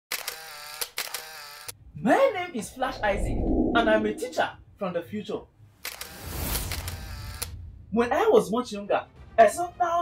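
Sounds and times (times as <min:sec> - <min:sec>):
steady pitched tone: 0:02.6 - 0:04.4.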